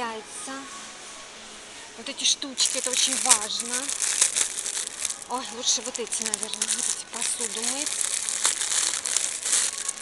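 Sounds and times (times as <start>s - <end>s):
plastic packaging crinkling: 2.6s - 10.0s.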